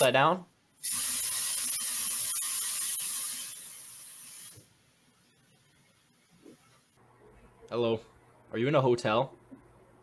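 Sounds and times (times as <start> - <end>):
loud steady hiss: 0.8 - 5.0.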